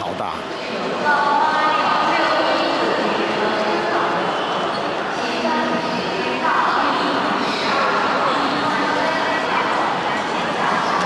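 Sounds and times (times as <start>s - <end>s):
echoing public-address announcement: 0.0s - 11.0s.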